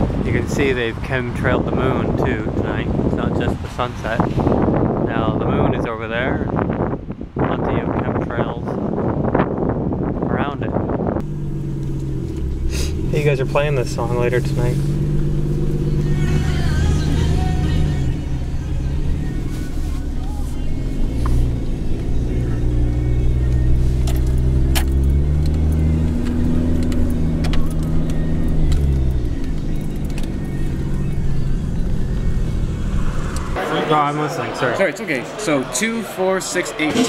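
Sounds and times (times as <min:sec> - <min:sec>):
car engine rumble: 0:00.0 - 0:33.7
road noise: 0:00.0 - 0:37.0
music on car stereo: 0:15.7 - 0:33.5.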